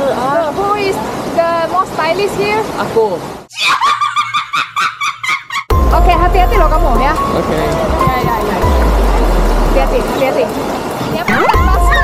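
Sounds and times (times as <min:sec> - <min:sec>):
rocky stream rushing: 0:00.0 - 0:03.5, 0:07.1 - 0:12.0
voices: 0:06.0 - 0:12.0.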